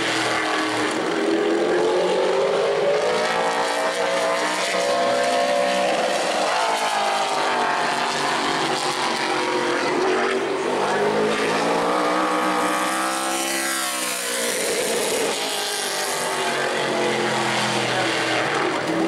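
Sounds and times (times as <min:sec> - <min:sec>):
race car engine: 0:00.0 - 0:19.0.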